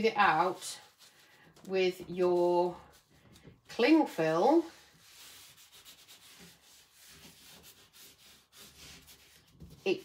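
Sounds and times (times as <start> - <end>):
cling film rubbing on paper: 0.0 - 10.0.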